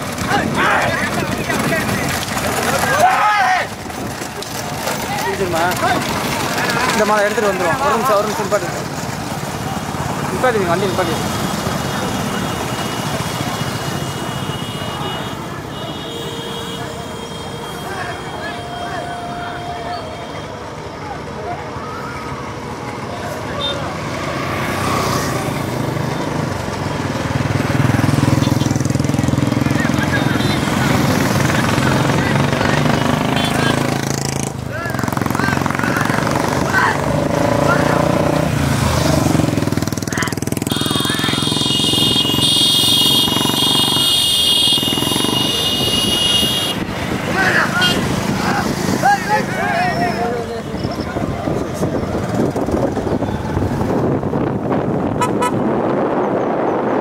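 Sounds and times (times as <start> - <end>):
motorcycle engines: 0.0 - 57.0
men shouting: 0.1 - 3.9, 17.8 - 20.4, 34.7 - 38.5, 45.4 - 50.9.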